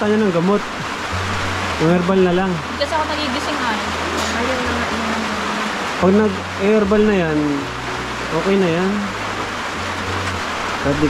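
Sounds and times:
heavy rain falling: 0.0 - 11.0.

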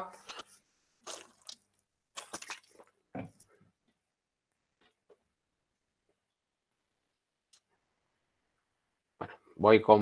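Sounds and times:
man gulping water: 1.0 - 3.5.

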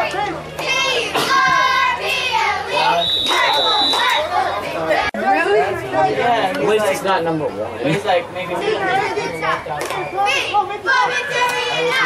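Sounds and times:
people chatting: 2.7 - 12.0.

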